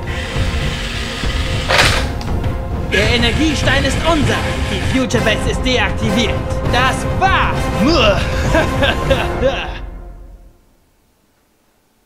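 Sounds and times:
dramatic background music: 0.0s - 10.6s.

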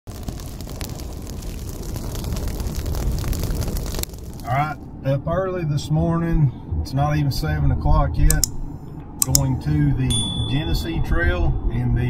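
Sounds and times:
crackling static noise: 0.0s - 4.9s.

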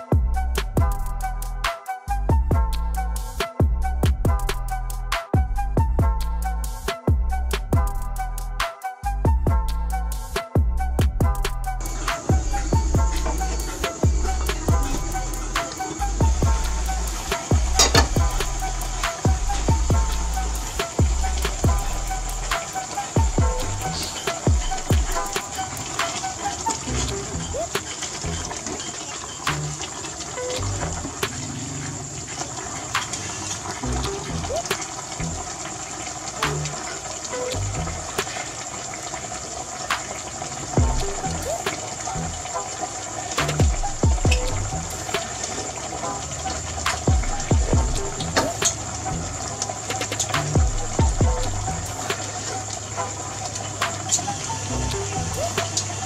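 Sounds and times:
soup bubbling in a pot: 10.8s - 56.0s
steady high hiss: 11.7s - 56.0s.

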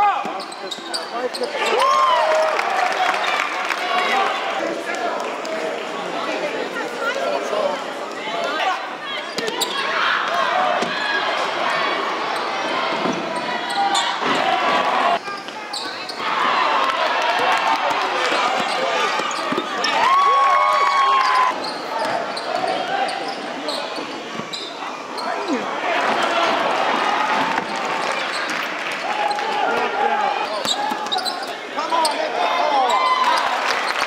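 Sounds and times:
crowd talking and shouting: 0.0s - 34.0s
shoe squeak: 0.4s - 1.7s, 15.3s - 16.2s, 21.5s - 25.4s, 30.6s - 32.2s.

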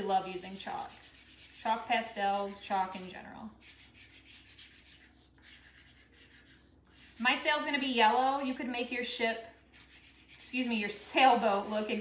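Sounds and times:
chalk pastel rubbing on paper: 0.0s - 8.5s, 9.6s - 12.0s.

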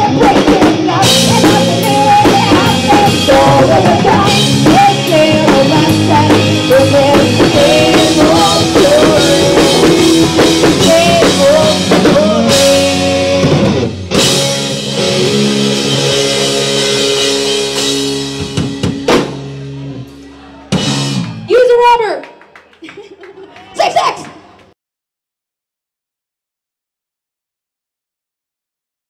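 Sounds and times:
woman singing: 0.0s - 13.6s
live pop-rock band: 0.0s - 21.7s.

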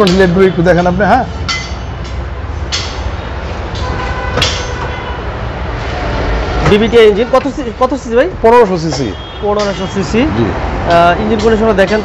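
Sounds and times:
man speaking: 0.0s - 1.3s, 6.6s - 12.0s.

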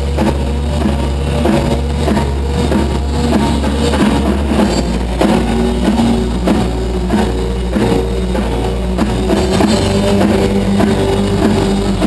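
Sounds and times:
drum kit beating: 0.0s - 12.0s
electric guitar: 0.0s - 12.0s
sustained low bass: 0.0s - 12.0s.

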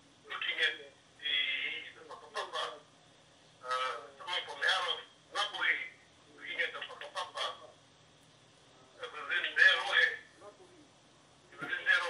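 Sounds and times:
person speaking: 11.5s - 12.0s.

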